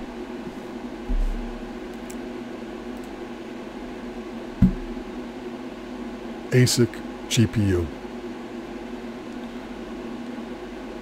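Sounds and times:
mechanical hum: 0.0 - 11.0
dull low bump: 4.6 - 5.1.

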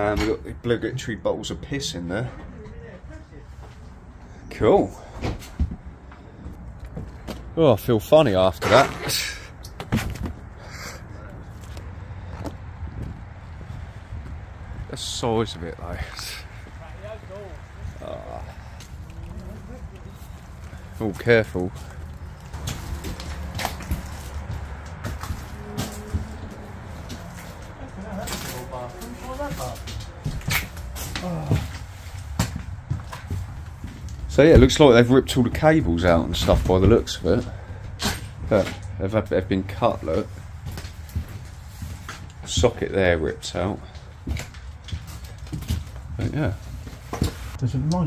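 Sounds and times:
footsteps on debris: 9.6 - 14.9, 15.9 - 34.8, 40.0 - 47.6
low voices: 10.4 - 12.7, 13.7 - 32.3.

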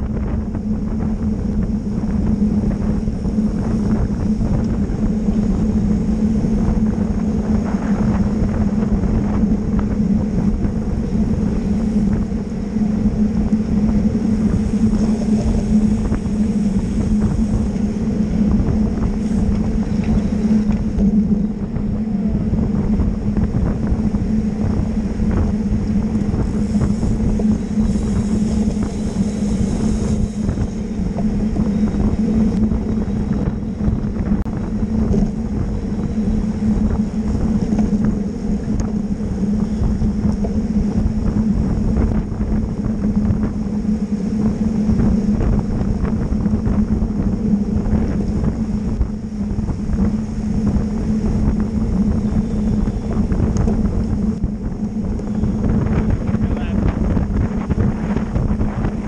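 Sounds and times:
bicycle tyre and road noise: 0.0 - 59.0
constant low hum: 0.0 - 59.0
wind rushing over microphone: 0.0 - 59.0.

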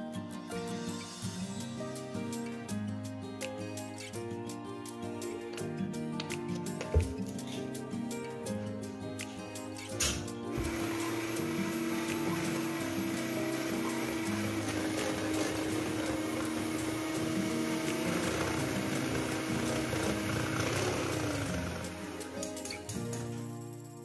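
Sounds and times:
background music: 0.0 - 24.0
electric hand mixer whirring: 10.5 - 22.7.

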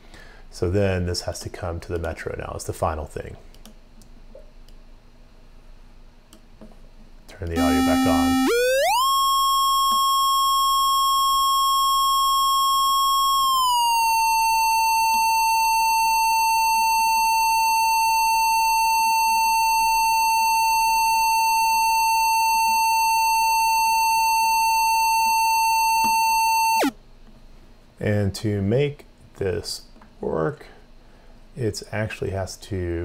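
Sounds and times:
synthesized oscillator tone: 7.6 - 26.9.

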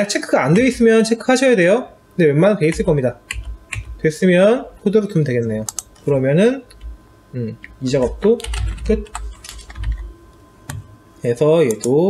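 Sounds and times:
keyboard keys clicking: 2.7 - 4.0, 5.6 - 6.0, 7.6 - 10.0.

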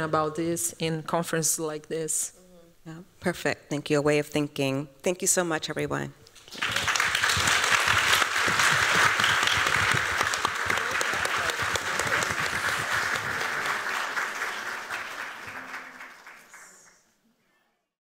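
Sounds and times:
audience applauding: 6.4 - 17.1.

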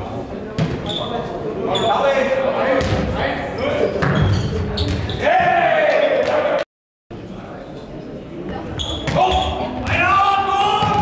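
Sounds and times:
players shouting: 5.2 - 6.7, 9.2 - 11.0.

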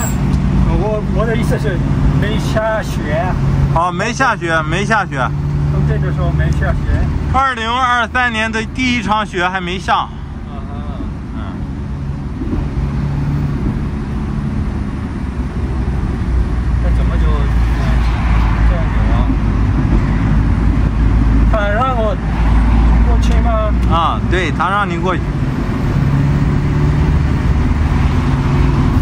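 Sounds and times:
engine and road rumble: 0.0 - 29.0.

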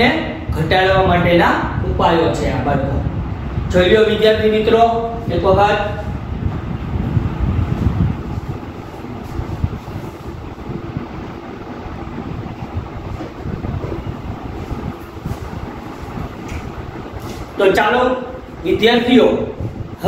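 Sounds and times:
low uneven rumbling: 0.0 - 20.0.

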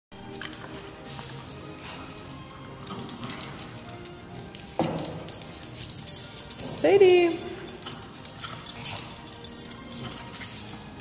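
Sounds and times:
background music: 0.1 - 11.0
claws clicking on concrete: 0.3 - 6.8, 7.4 - 11.0.

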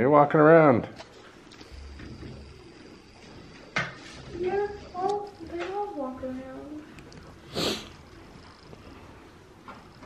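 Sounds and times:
faint low hum: 0.0 - 10.0.

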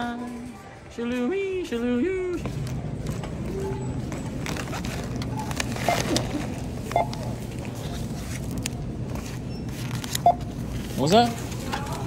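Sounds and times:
barcode scanner beeping: 6.9 - 7.3, 10.2 - 10.6.

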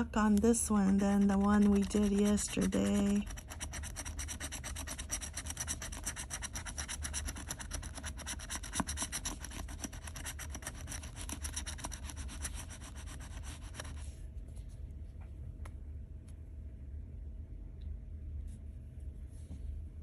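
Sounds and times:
metal tool scraping ticket: 0.7 - 12.0.

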